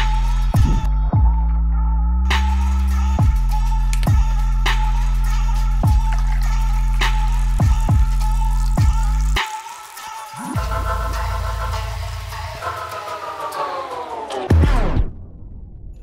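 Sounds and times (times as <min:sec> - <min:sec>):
electronic music with heavy bass: 0:00.0 - 0:15.4
kick drum beat: 0:05.8 - 0:06.2, 0:07.6 - 0:08.1, 0:08.8 - 0:09.0.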